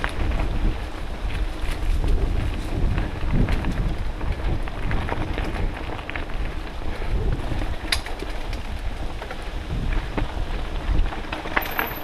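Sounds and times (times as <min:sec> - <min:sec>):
wind buffeting microphone: 0:00.0 - 0:11.7
bike clicks and rattles: 0:00.0 - 0:12.0.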